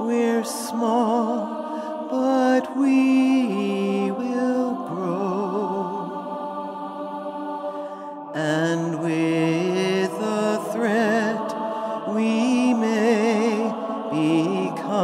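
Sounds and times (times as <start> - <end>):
layered voices chanting: 0.0 - 15.0.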